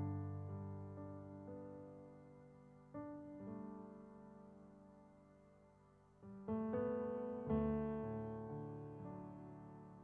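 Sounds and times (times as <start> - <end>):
soft slow piano music: 0.0 - 10.0.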